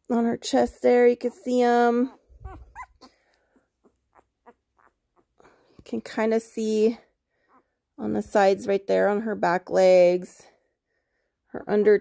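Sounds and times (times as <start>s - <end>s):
puppy squeaking: 2.1s - 3.1s, 3.8s - 5.5s
puppy whining: 2.1s - 5.6s.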